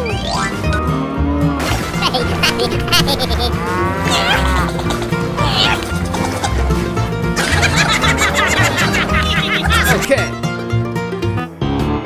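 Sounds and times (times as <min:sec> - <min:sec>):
background music: 0:00.0 - 0:12.0
cow mooing: 0:02.8 - 0:04.8.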